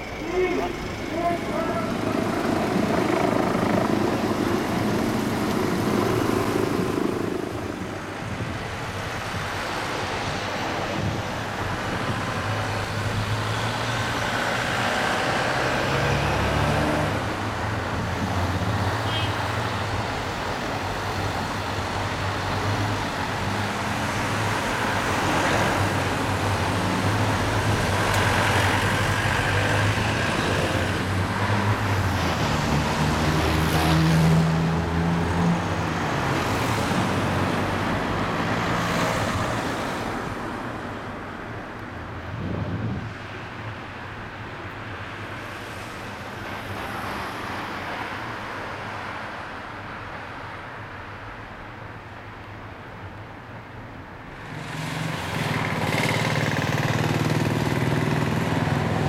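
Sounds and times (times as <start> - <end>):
low engine drone: 0.0 - 7.7
vehicles driving past: 0.0 - 51.5, 53.5 - 59.0.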